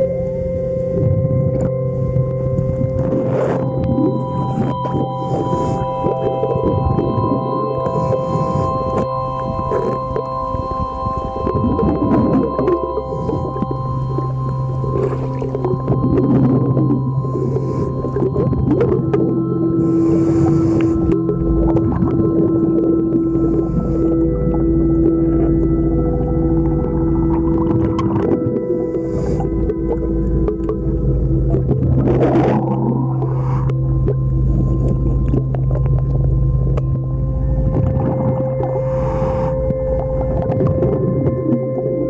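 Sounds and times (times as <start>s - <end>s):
underwater hum: 0.0s - 42.0s
regulator bubbles rushing: 1.0s - 42.0s.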